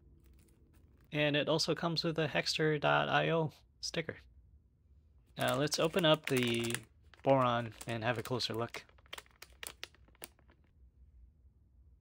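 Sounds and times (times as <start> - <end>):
plastic bag crinkling: 5.3 - 10.7.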